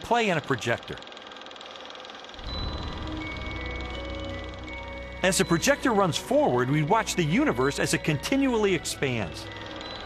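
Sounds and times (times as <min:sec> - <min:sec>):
film projector clattering: 0:00.0 - 0:10.0
held chime-like tones: 0:02.4 - 0:10.0
low music drone: 0:02.4 - 0:10.0.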